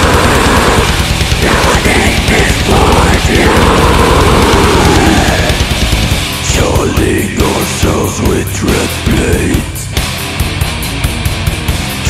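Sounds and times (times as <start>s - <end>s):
fast drumming: 0.0s - 8.1s
distorted guitars: 0.0s - 12.0s.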